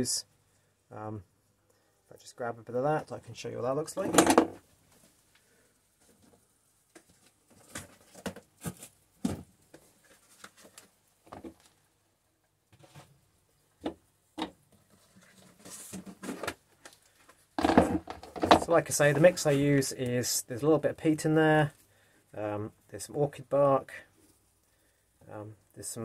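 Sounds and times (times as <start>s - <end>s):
rustle and scrape: 9.7s - 11.8s, 14.7s - 17.5s, 18.5s - 20.4s
objects knocking on a bench: 17.6s - 18.6s.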